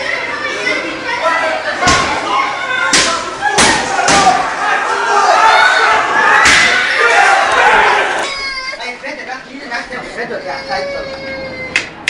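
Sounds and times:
people shouting and screaming: 0.2s - 8.6s.

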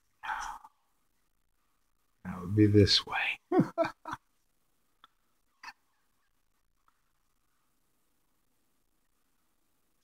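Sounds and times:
man laughing breathily: 3.5s - 4.2s.

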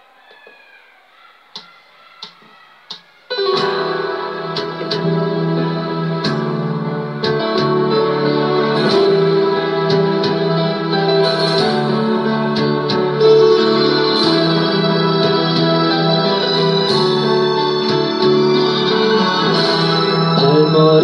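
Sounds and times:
slow ballad backing track: 3.4s - 21.0s.

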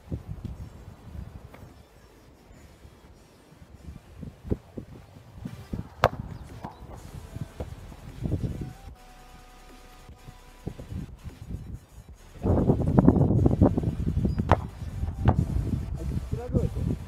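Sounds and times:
wind rumbling on microphone: 0.0s - 9.0s, 10.0s - 17.0s.

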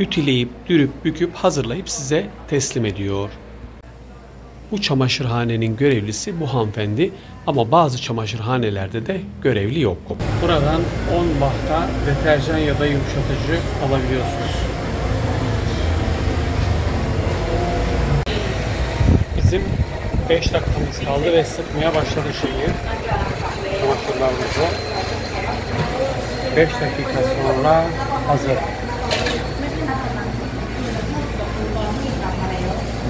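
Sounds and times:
washing machines running: 10.2s - 33.0s.

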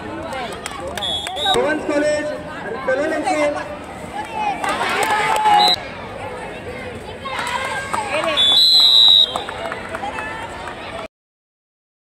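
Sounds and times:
people shouting and talking: 0.0s - 11.1s.

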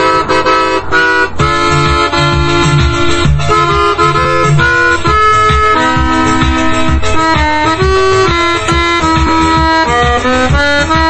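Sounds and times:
accordion bass notes: 0.0s - 11.0s
accordion chords: 0.0s - 11.0s.

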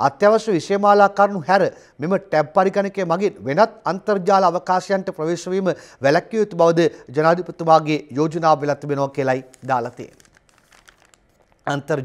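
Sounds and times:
man speaking: 0.0s - 10.2s, 11.6s - 12.0s
newspaper pages rustling: 9.2s - 11.8s.

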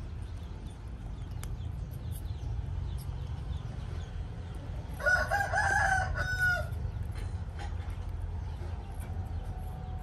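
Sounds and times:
steady low rumble: 0.0s - 10.0s
rooster crowing: 5.0s - 6.8s.

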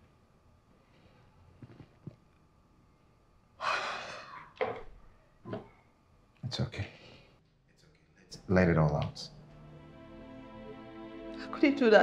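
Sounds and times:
woman sharp in-breath crying: 3.6s - 4.4s.

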